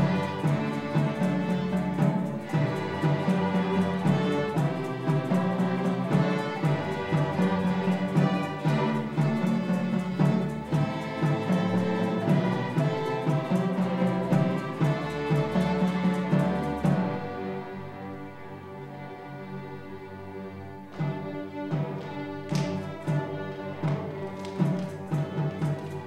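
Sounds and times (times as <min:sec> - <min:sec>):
violins and cellos bowing: 0:00.0 - 0:26.0.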